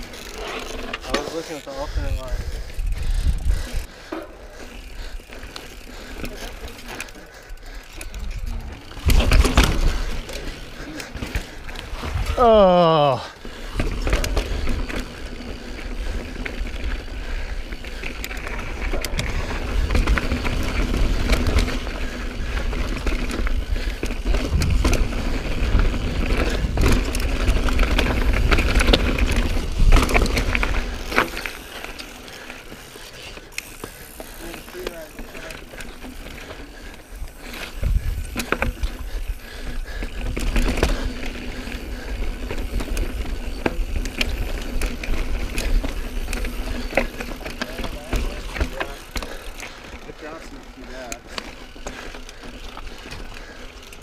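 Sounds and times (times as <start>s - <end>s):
bike chain and frame rattling: 0.0s - 54.0s
bike tyre rumble: 0.0s - 54.0s
wind buffeting microphone: 1.9s - 4.0s, 23.4s - 31.1s, 37.1s - 40.0s.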